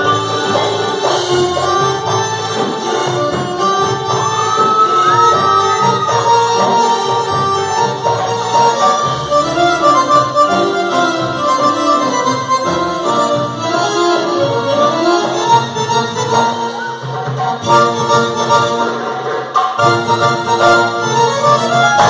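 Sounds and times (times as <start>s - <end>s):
hand drums rhythm: 0.0s - 13.3s
electronic keyboard melody: 0.0s - 22.0s.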